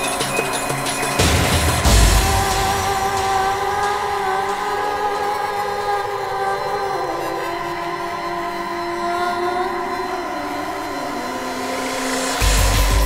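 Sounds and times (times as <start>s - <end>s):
synthesizer chords and drones: 0.0s - 13.0s.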